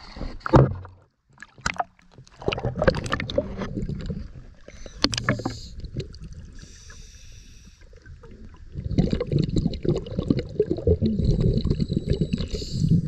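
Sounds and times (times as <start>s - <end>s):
water splashing and sloshing: 0.0s - 13.0s.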